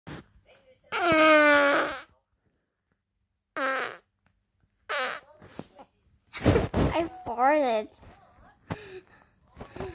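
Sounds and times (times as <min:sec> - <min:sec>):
fart sounds: 0:00.9 - 0:02.2, 0:03.5 - 0:04.2, 0:04.9 - 0:05.3.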